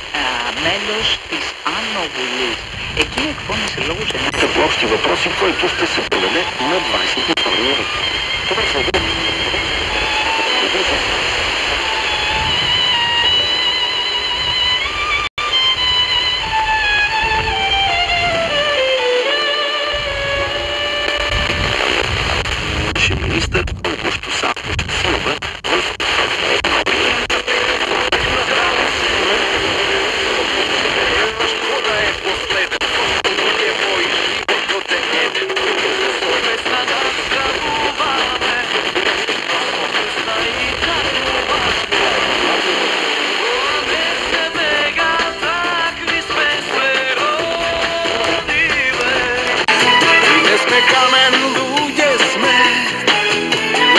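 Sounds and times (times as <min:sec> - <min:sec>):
distant radio music: 0:00.0 - 0:53.9
radio static hiss: 0:00.0 - 0:53.9.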